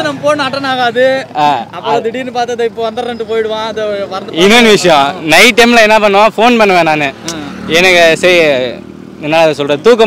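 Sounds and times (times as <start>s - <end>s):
young man talking: 0.0s - 10.0s.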